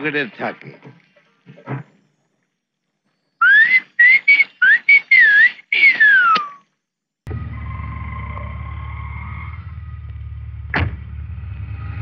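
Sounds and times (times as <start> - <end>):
person whistling a tune: 3.4 - 6.6.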